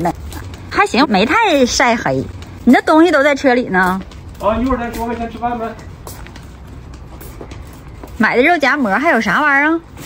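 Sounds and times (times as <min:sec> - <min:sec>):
sandal footsteps on paving stones: 0:00.0 - 0:10.0.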